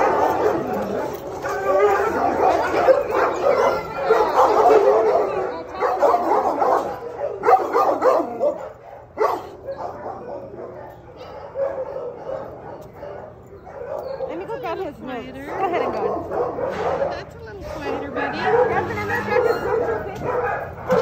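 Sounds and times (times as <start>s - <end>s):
dogs barking and yipping: 0.0s - 21.0s.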